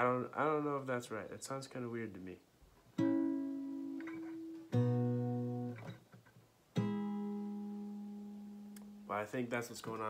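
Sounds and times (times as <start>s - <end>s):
acoustic guitar plucked chords: 2.9s - 9.3s.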